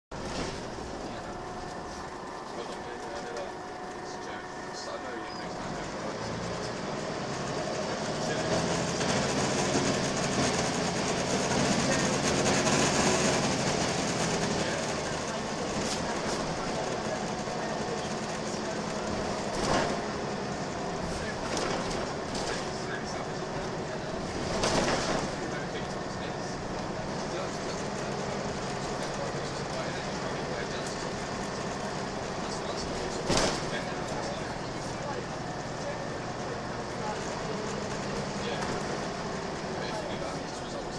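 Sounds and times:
bus diesel engine: 0.1 - 40.9
road rumble: 0.1 - 40.9.

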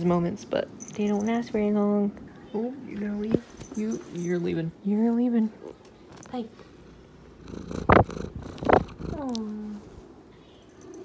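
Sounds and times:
cat purring: 5.4 - 11.0.

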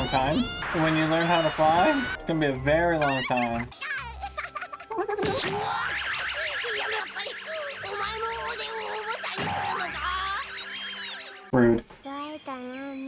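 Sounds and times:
soft background music: 0.0 - 13.0
birds chirping rapidly: 5.9 - 11.5.

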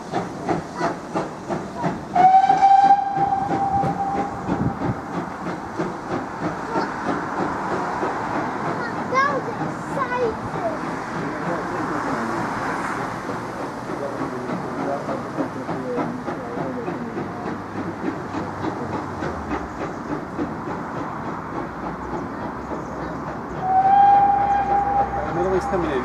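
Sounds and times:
hissing steam: 0.0 - 26.0
train wheels clicking over rail joints: 0.0 - 26.0
steady train whistle: 2.1 - 4.5, 23.6 - 26.0.

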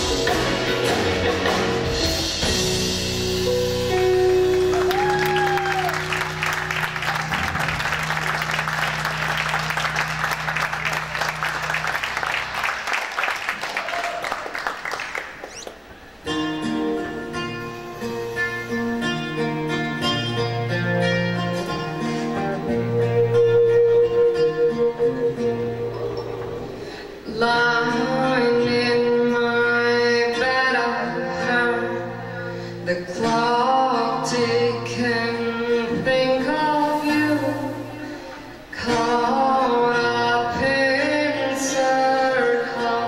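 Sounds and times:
guitar picked notes: 0.0 - 12.6, 15.5 - 43.0.

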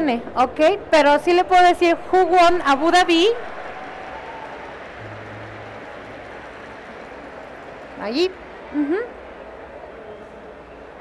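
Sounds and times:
large hall background noise: 0.0 - 11.0
low hum: 5.0 - 9.0.

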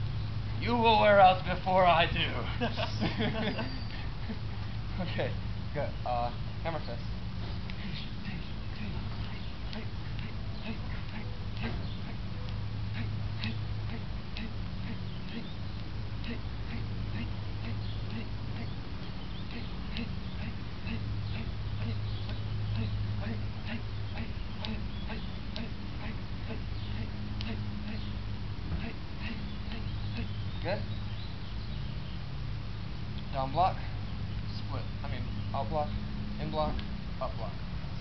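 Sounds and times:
steady low hum: 0.0 - 38.0
steady low rumble: 0.0 - 38.0.

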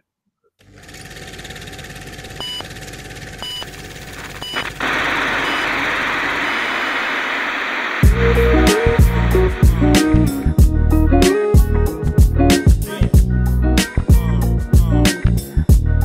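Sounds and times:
burst of noise: 4.4 - 10.6
building hiss: 4.8 - 10.6
music with heavy low notes: 8.0 - 16.0.

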